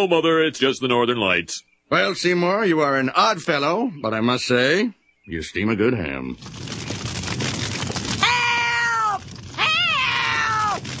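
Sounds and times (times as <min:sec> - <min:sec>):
fire crackling: 0:06.2 - 0:11.0.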